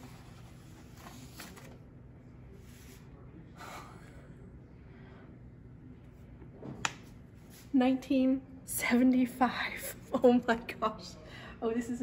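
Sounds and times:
paper rustling: 0:00.0 - 0:01.8.

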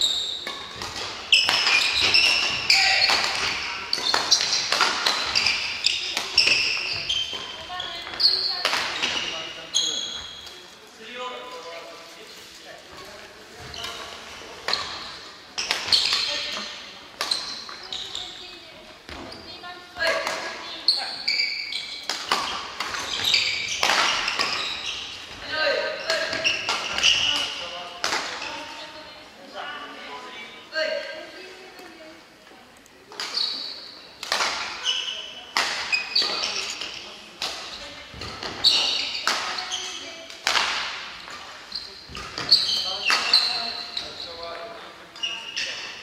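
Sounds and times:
shoes squeaking on wooden floor: 0:00.0 - 0:10.7, 0:12.9 - 0:27.7, 0:34.8 - 0:37.1, 0:37.7 - 0:40.2, 0:41.2 - 0:46.0
rackets striking shuttlecocks: 0:00.4 - 0:09.3, 0:13.8 - 0:18.4, 0:22.0 - 0:25.4, 0:26.1 - 0:28.4, 0:34.2 - 0:34.8, 0:35.5 - 0:43.5.

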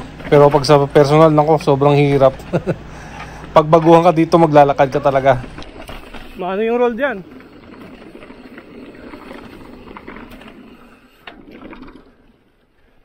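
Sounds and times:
bike tyres rattling over boardwalk: 0:00.0 - 0:13.0.

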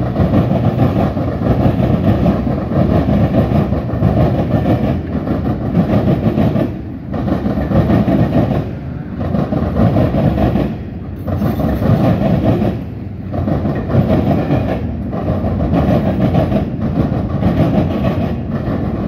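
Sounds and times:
freight train wheels on track: 0:00.0 - 0:19.0.

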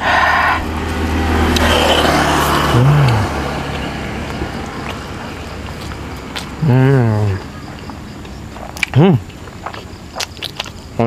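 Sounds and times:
motor vehicle passing: 0:00.0 - 0:10.4.

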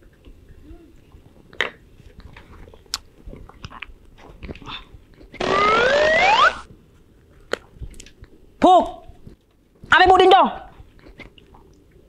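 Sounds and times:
hiss with rising whistle: 0:05.4 - 0:06.7
faint small clicks and smacks: 0:07.4 - 0:08.4.

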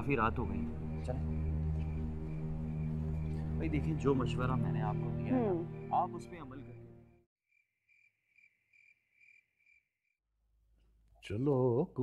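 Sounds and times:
faint cricket chirping: 0:00.0 - 0:04.8, 0:07.5 - 0:09.9.

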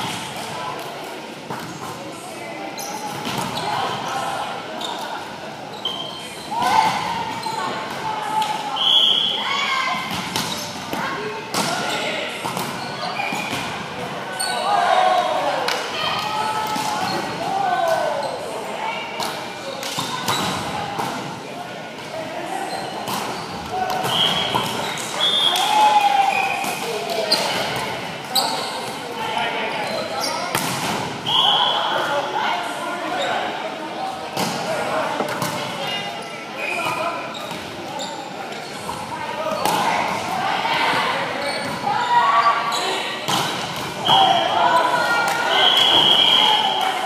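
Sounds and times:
players shouting and chatting: 0:00.0 - 0:47.0.

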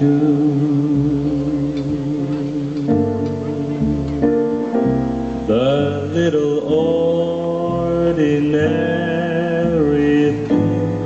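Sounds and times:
slow jazz melody: 0:00.0 - 0:11.0
soft keyboard accompaniment: 0:00.0 - 0:11.0.

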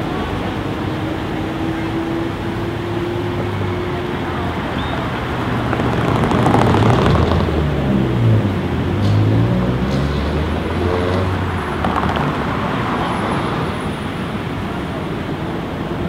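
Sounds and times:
steady traffic noise: 0:00.0 - 0:16.0.

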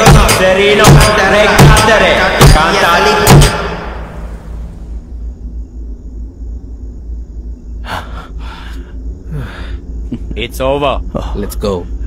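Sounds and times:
low steady rumble: 0:03.9 - 0:12.0.

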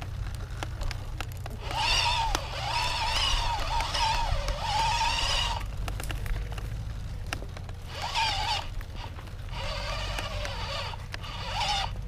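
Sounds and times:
electric motorbike motor whining: 0:00.0 - 0:12.0
small clicks: 0:00.0 - 0:12.0
tyres rumbling on dirt: 0:00.0 - 0:12.0.

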